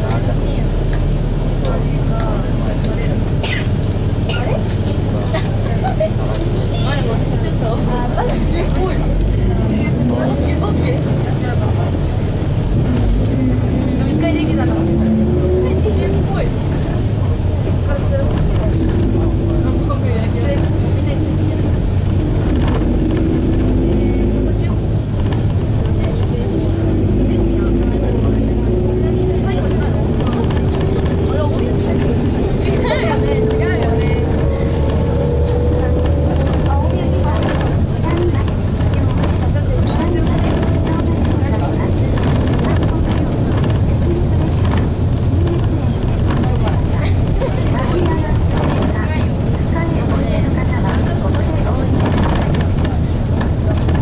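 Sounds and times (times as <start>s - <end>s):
diesel bus engine accelerating: 0.0s - 54.0s.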